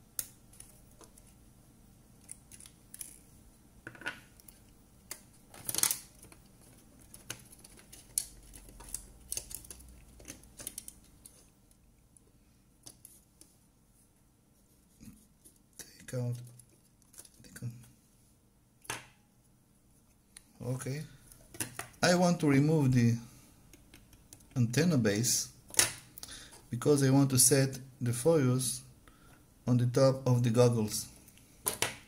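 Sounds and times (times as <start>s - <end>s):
plastic parts clicking and handling: 2.2s - 3.2s, 3.8s - 11.8s, 16.3s - 17.5s, 31.6s - 32.0s.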